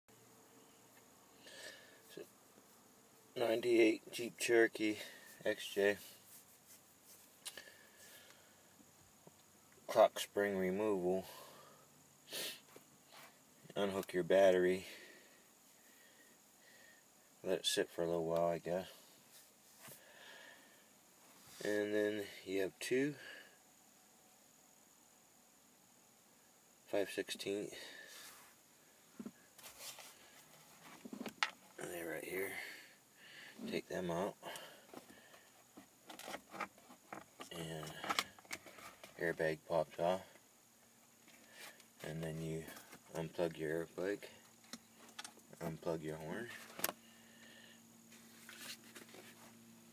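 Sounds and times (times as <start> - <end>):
faint handling noises: 2.0 - 10.3, 27.4 - 32.5, 33.5 - 49.9
person speaking: 31.8 - 32.9, 33.6 - 34.8, 37.4 - 38.3, 39.1 - 40.3, 45.5 - 46.8.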